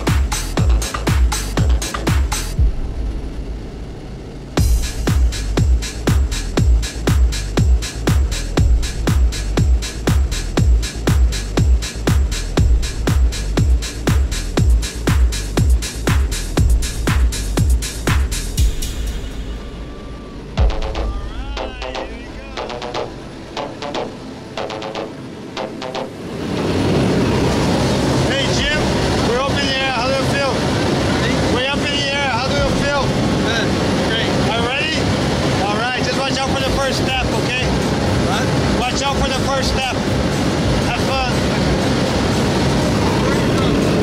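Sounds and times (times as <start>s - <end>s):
small plane engine droning: 0.0s - 44.0s
raised voices: 19.7s - 23.1s.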